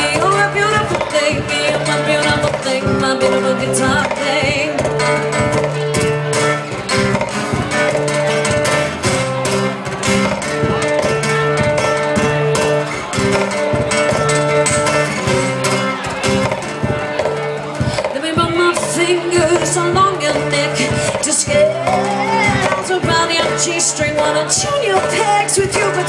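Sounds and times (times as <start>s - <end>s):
acoustic guitar strumming: 0.0s - 26.0s.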